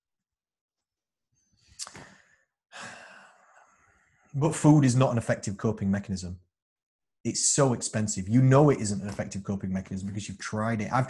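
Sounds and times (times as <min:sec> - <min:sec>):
mouth click: 0:01.8 - 0:02.1
man sighing: 0:01.8 - 0:03.4.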